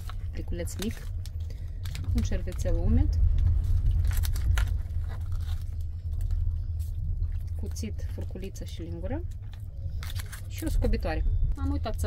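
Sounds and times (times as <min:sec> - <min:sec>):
plastic wrapper tearing and crinkling: 0:00.0 - 0:08.2, 0:09.3 - 0:10.9
train rumble: 0:00.0 - 0:12.0.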